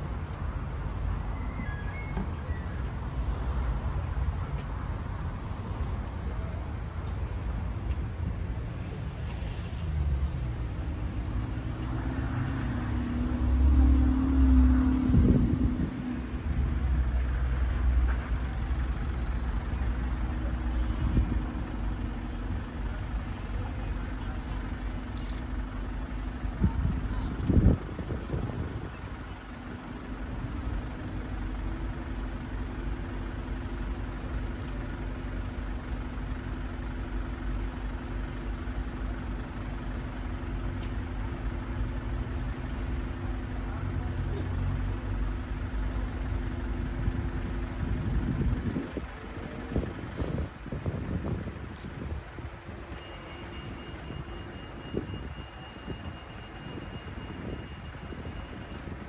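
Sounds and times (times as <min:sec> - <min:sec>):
vehicle engine idling: 0:00.0 - 0:59.0.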